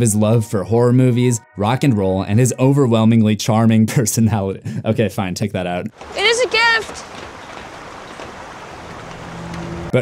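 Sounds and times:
shallow stream flowing: 6.0s - 9.9s.

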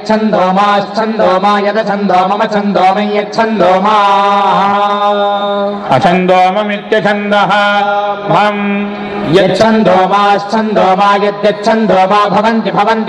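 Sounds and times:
men chanting verses: 0.0s - 13.0s.

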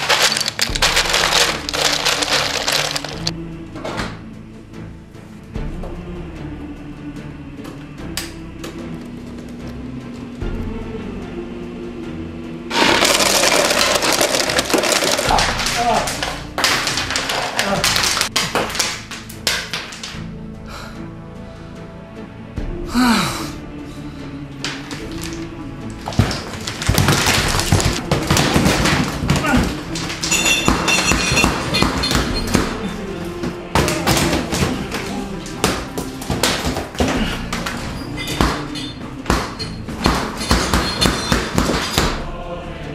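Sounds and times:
ice clattering from dispenser: 0.0s - 3.3s, 12.7s - 18.9s
soft background music: 0.0s - 42.9s.

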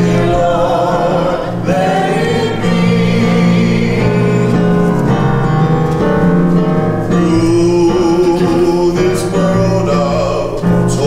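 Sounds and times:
women's choir singing a hymn: 0.0s - 5.3s.

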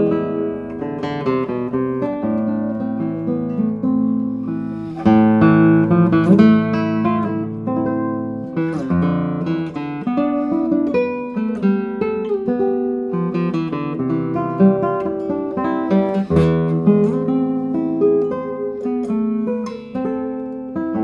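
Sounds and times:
fingerpicked classical guitar: 0.0s - 21.0s.

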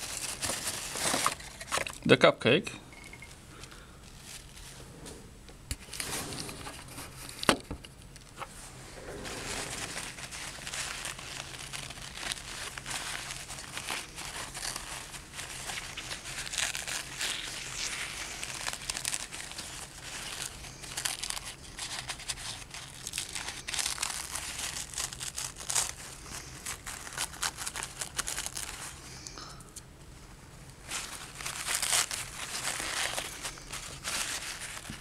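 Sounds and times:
paper crinkling and crackling: 0.0s - 2.1s, 3.5s - 4.8s, 5.7s - 29.5s, 30.8s - 35.0s.

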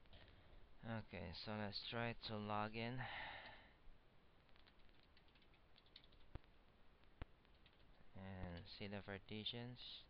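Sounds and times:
faint keyboard clicks: 4.5s - 8.8s.

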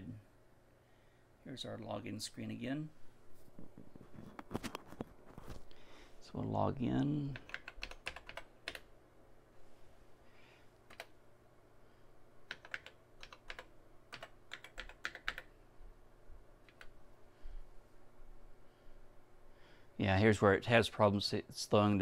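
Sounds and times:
faint steady hum: 0.0s - 22.0s
keyboard keys clicking: 7.3s - 8.9s, 10.9s - 11.1s, 12.5s - 15.5s, 16.6s - 16.9s.

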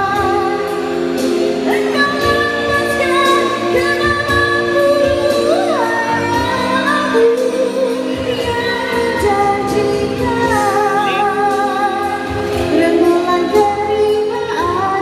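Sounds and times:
woman singing through a microphone: 0.0s - 15.0s.

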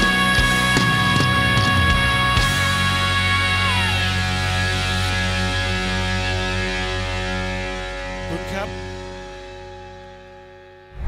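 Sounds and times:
electric guitar and bass chord ringing: 0.0s - 11.0s.

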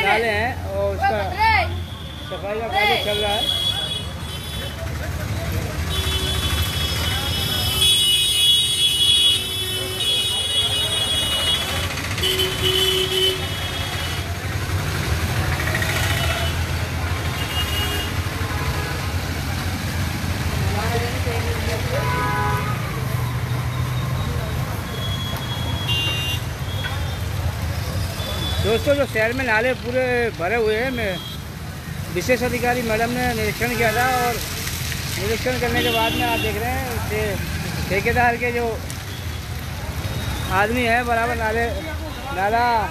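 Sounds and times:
vehicle engines running: 4.1s - 7.8s, 10.8s - 42.9s
car horn toots: 25.5s - 27.0s
people talking: 35.2s - 38.8s.

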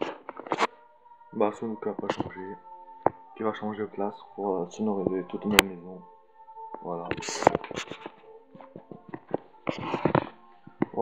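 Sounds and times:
camera rustling: 0.0s - 0.7s
faint background music: 0.0s - 11.0s.

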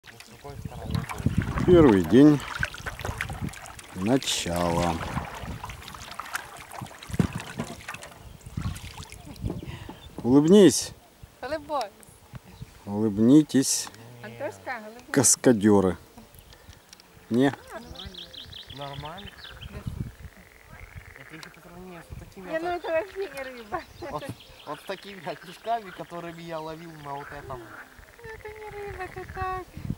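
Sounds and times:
kayak paddles dipping into water: 0.0s - 10.4s
water dripping from paddle blades: 0.0s - 10.5s, 16.2s - 18.0s, 21.1s - 21.8s, 22.4s - 23.8s
frogs croaking in rattling trill: 16.4s - 29.6s.

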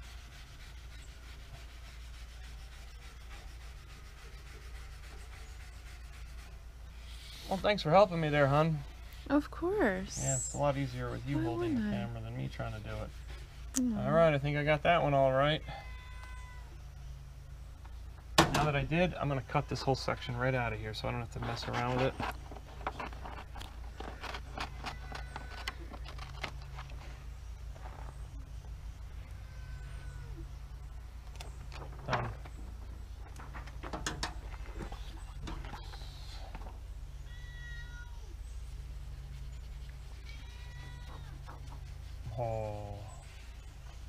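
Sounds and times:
cat meowing: 37.3s - 38.4s
steady low hum: 38.2s - 44.0s.

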